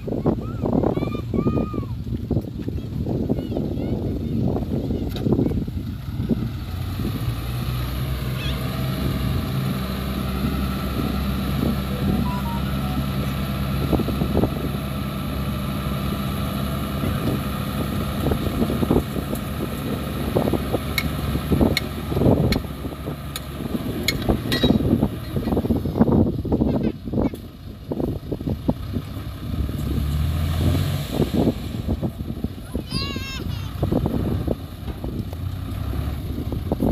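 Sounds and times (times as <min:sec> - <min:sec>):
diesel truck engine running: 0:00.0 - 0:36.9.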